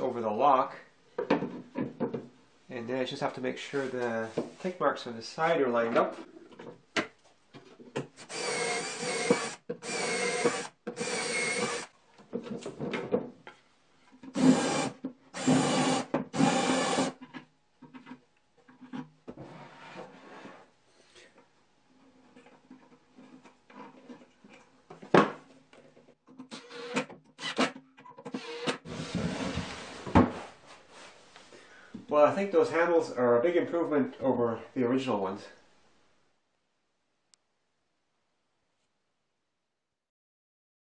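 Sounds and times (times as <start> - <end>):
power drill boring into wood: 8.2 - 11.9, 14.4 - 17.2, 26.5 - 27.7, 28.3 - 28.9.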